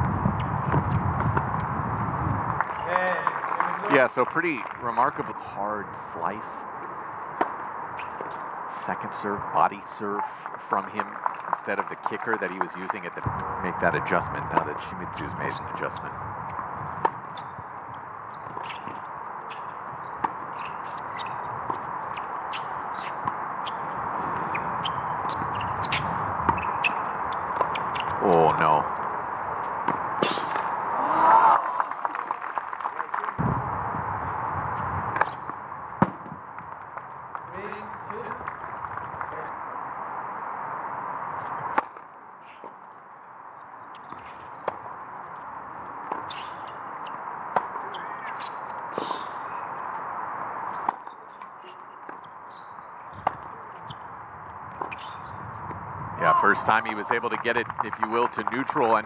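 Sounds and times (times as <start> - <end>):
outdoor court ambience hiss: 0.2 - 59.0.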